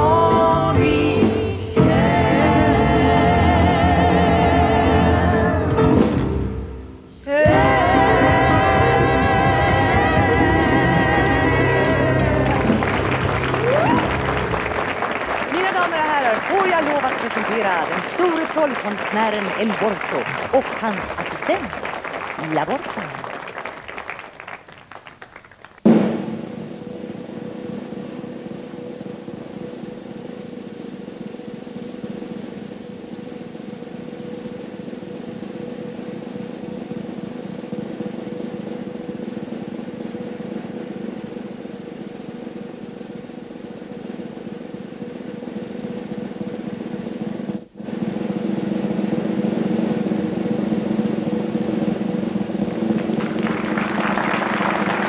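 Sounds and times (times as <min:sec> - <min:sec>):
held low musical notes: 0:00.0 - 0:18.4
snare drum roll: 0:07.5 - 0:30.4, 0:45.3 - 0:55.0
sharp drum hit: 0:25.9 - 0:26.7.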